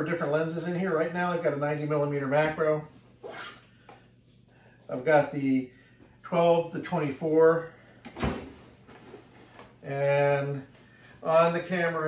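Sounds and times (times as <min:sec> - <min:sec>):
faint handling sounds: 0:01.7 - 0:12.0
scratchy rasp of fabric dividers: 0:03.1 - 0:03.7.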